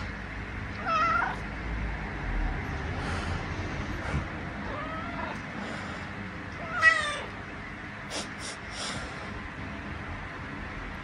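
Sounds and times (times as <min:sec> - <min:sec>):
cat meowing: 0:00.8 - 0:01.4, 0:04.6 - 0:05.4, 0:06.6 - 0:07.4.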